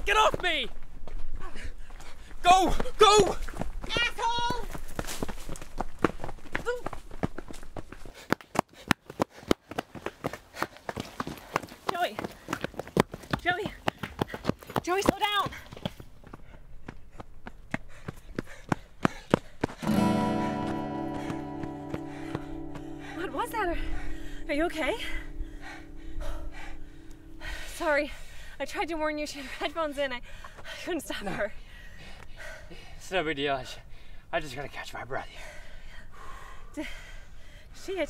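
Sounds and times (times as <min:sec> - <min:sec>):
running footsteps on dirt: 0:00.0 - 0:32.9
short wordless shouts: 0:02.4 - 0:04.7
music: 0:19.8 - 0:27.7.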